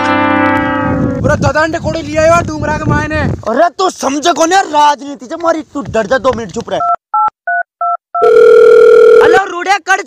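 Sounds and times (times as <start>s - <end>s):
telephone keypad beep: 6.8s - 9.4s
steady telephone tone: 7.5s - 9.4s
person speaking on phone: 8.9s - 9.8s.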